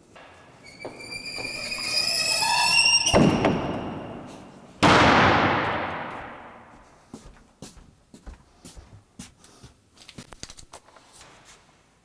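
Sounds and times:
squealing ramp hinges: 0:00.2 - 0:04.5
ramp banging on concrete floor: 0:00.2 - 0:06.5
thump: 0:03.1 - 0:06.3.

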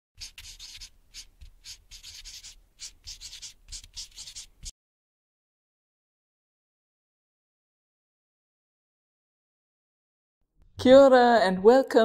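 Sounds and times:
marker pen scratchy strokes: 0:00.2 - 0:04.7.

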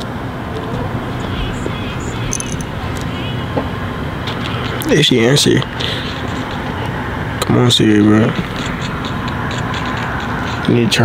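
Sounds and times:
distant road traffic rumble: 0:00.0 - 0:11.0
faint hum: 0:00.0 - 0:11.0.

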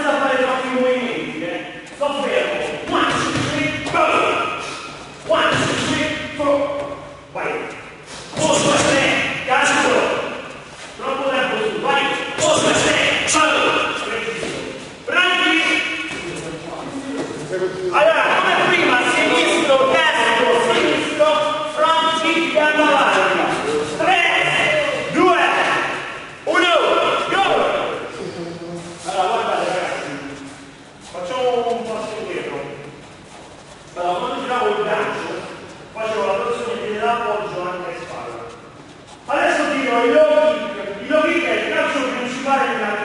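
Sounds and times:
man talking in echoing hall: 0:00.0 - 0:43.0.

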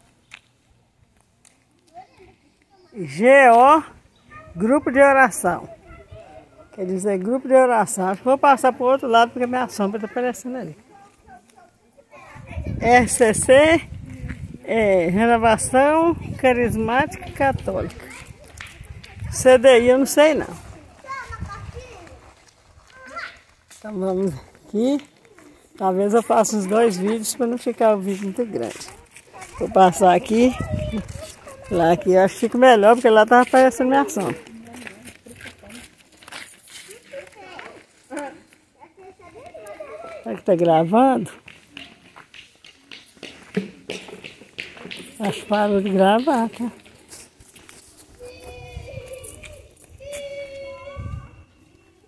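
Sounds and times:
footsteps on concrete: 0:00.0 - 0:50.8.

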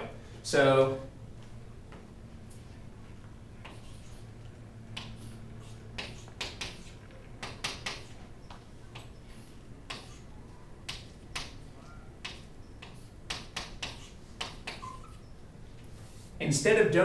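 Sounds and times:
chalk tapping and scratching: 0:03.6 - 0:04.3, 0:05.0 - 0:10.3, 0:12.2 - 0:14.8.

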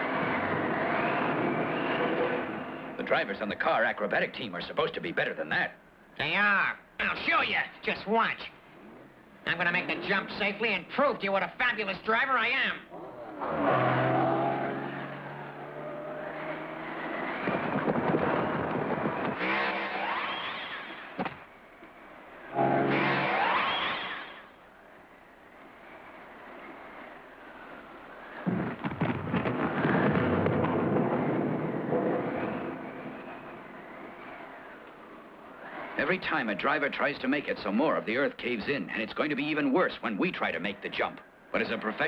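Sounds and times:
race car engine revving: 0:13.0 - 0:21.0
crashing rumbling noise: 0:28.4 - 0:33.7.

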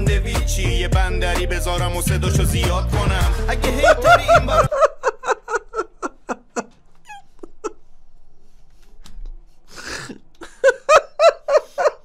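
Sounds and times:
man laughing: 0:03.4 - 0:07.8, 0:09.8 - 0:12.0.

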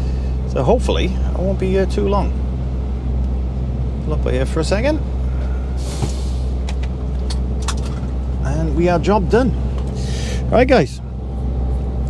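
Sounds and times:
truck engine idling: 0:00.0 - 0:12.0
air hiss: 0:05.8 - 0:06.7.

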